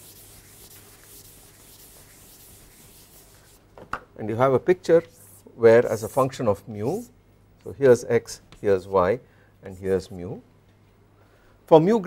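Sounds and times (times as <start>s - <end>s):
rubbing on blackboard: 0.0s - 3.6s, 5.1s - 6.2s.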